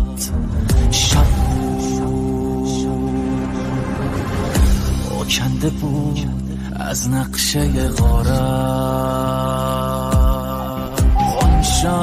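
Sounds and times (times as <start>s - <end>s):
man singing a long note: 0.0s - 3.6s, 7.0s - 12.0s
sustained low backing music: 0.0s - 12.0s.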